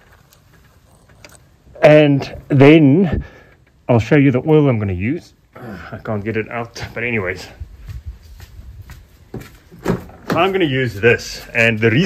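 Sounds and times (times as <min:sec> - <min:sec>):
man speaking: 0:01.8 - 0:03.2, 0:03.9 - 0:07.7, 0:10.3 - 0:12.0.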